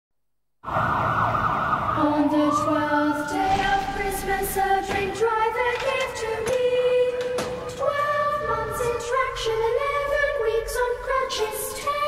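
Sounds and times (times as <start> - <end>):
ambulance siren: 0.6 - 5.9, 7.1 - 12.0.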